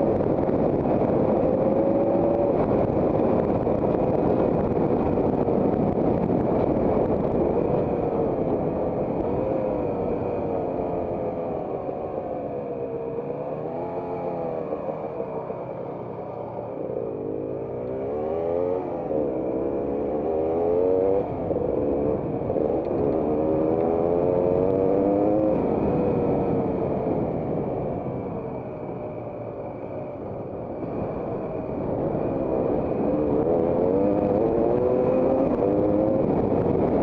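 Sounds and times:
motorcycle engine revving: 0.0 - 28.1, 30.0 - 37.0.

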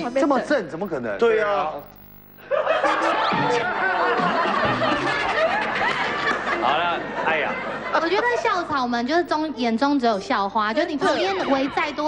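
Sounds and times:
people laughing together: 2.4 - 8.5.

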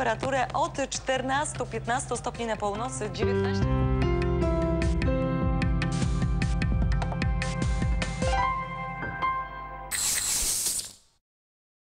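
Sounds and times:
hissing static noise: 9.9 - 11.2.

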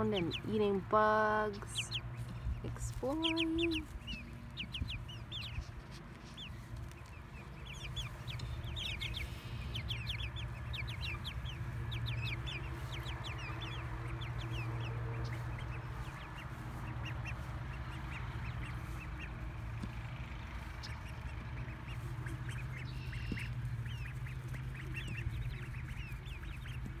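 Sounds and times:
chicks and ducklings peeping: 0.0 - 27.0
steady low hum: 0.0 - 27.0.

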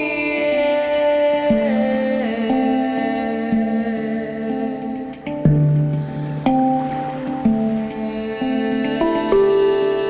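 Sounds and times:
handpan notes ringing: 1.4 - 10.0.

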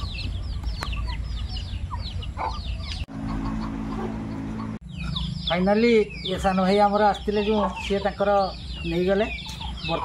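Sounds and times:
chickens peeping: 0.0 - 10.0.

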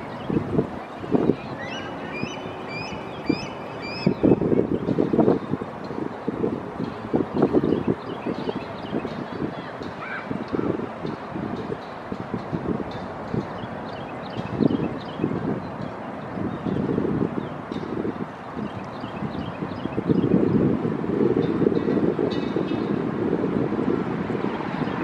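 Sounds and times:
wind buffeting microphone: 0.0 - 25.0
bird chirping: 1.4 - 4.9.

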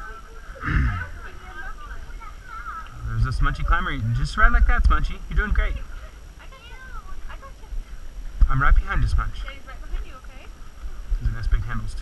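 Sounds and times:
low microphone rumble: 0.0 - 12.0.

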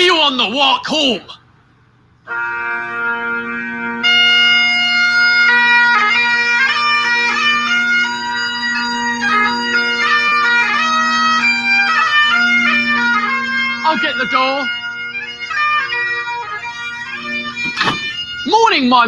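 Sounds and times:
bagpipe chanter melody: 2.2 - 19.0
bagpipe drones: 2.2 - 19.0.

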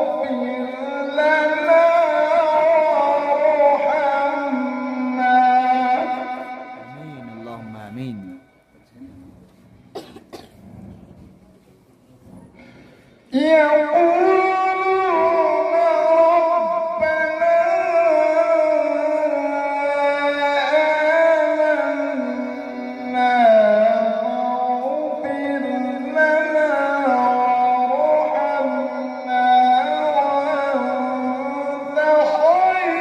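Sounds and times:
man chanting melodically into microphone: 0.0 - 8.9, 13.3 - 33.0.

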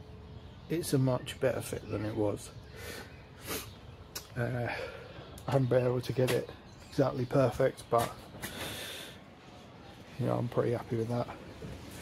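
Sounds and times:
breath hissing close to microphone: 2.8 - 3.8.

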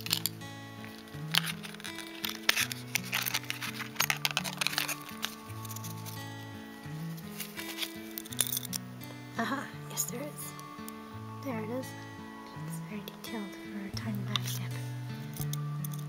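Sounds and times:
hands handling pin and paper: 0.0 - 8.9, 14.2 - 16.0
background music of low notes: 0.0 - 16.0.

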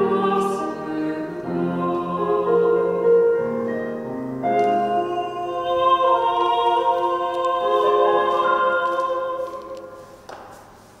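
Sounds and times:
man and woman singing: 0.0 - 3.3, 4.6 - 10.0
keyboard accompaniment: 0.0 - 10.3.

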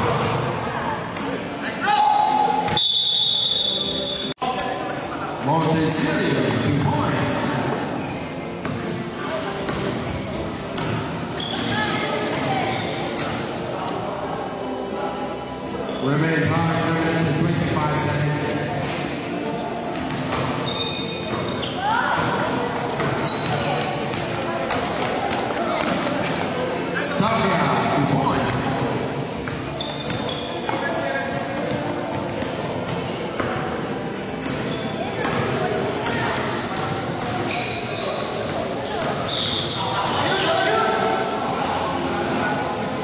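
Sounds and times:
voices of players and spectators: 0.0 - 43.0.

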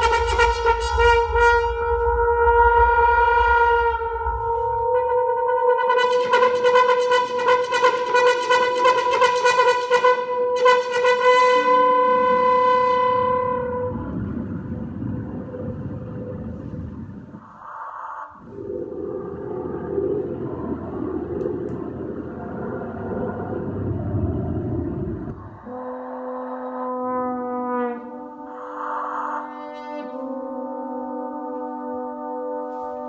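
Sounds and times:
dense rumbling electronic noise: 0.0 - 9.5, 10.4 - 27.5
horn playing held notes: 0.0 - 14.1.

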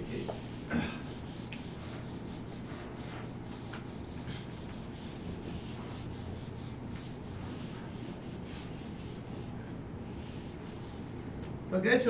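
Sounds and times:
marker scratching on whiteboard: 0.0 - 11.1
steady low hum: 0.0 - 12.0.

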